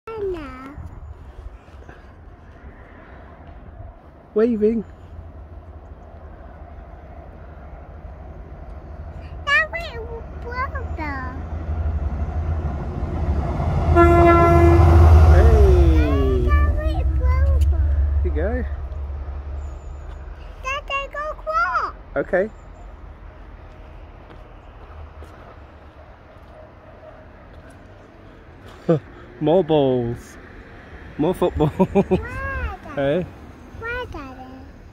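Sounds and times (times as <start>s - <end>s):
distant diesel locomotive rumble: 0.2s - 34.9s.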